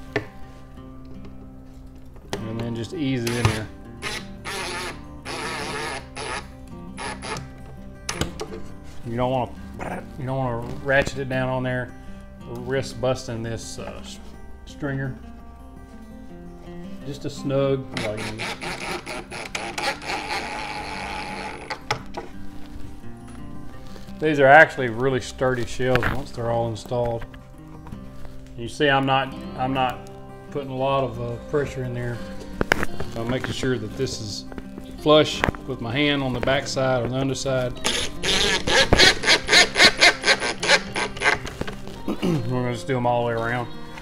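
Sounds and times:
background music low notes: 0.0s - 44.0s
impact driver driving screws: 3.3s - 7.5s, 18.0s - 21.8s, 37.8s - 41.4s.

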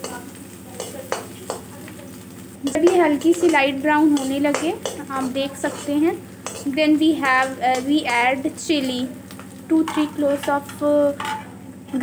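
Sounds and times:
onions frying in a pan: 0.0s - 12.0s
spatula clicking against pan: 0.8s - 1.7s, 2.7s - 8.2s.

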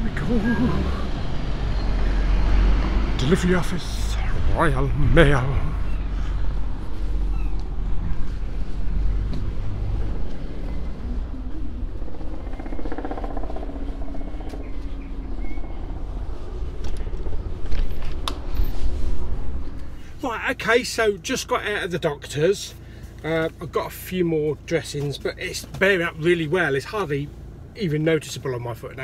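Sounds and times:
low rumble of traffic: 0.0s - 29.0s.

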